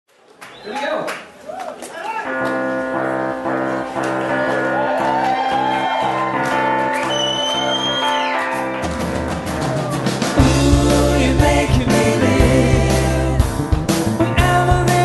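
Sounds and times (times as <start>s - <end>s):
live rock band: 2.2s - 15.0s
electric piano chords: 2.3s - 7.1s, 8.1s - 15.0s
high held tone: 4.8s - 13.4s.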